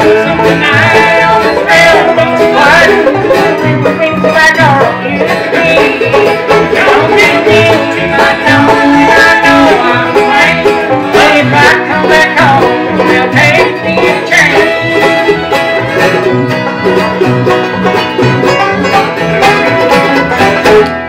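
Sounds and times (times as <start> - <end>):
acoustic guitar: 0.0 - 21.0
banjo: 0.0 - 21.0
fiddle: 0.0 - 21.0
mandolin: 0.0 - 21.0.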